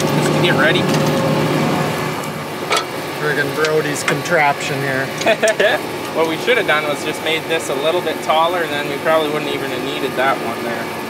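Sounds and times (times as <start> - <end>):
engine idling with hiss: 0.0 - 11.0.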